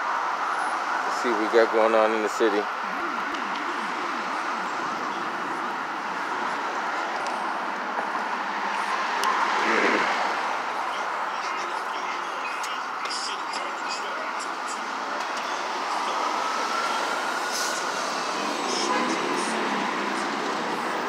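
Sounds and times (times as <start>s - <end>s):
city street traffic: 0.0s - 21.0s.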